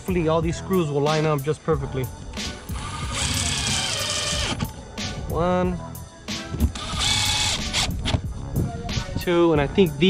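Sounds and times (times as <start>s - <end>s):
cordless drill driving screw: 2.7s - 4.7s, 6.7s - 8.2s.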